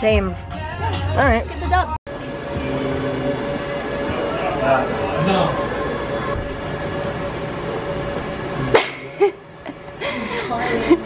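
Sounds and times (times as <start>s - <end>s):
indistinct voices: 1.2s - 6.4s
steady hum: 2.1s - 11.0s.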